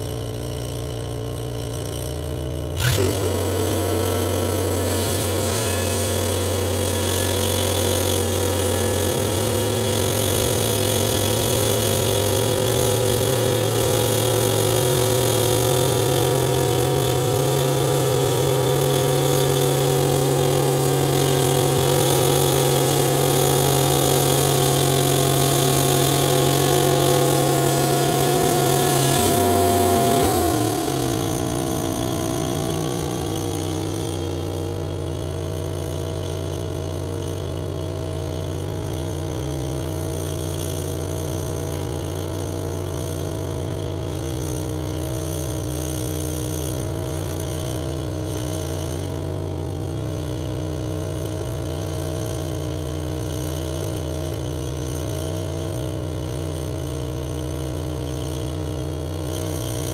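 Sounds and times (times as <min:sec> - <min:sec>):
band saw cutting log: 0:00.0 - 0:59.9
sawmill engine running: 0:00.0 - 0:59.9.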